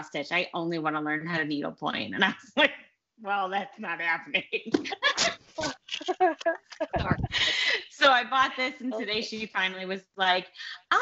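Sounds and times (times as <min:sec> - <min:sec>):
women laughing: 0:04.8 - 0:07.8.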